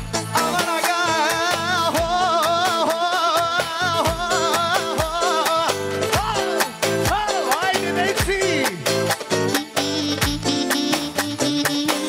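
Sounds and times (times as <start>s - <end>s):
ornamented lead melody: 0.0s - 12.0s
steady drum beat: 0.0s - 12.0s.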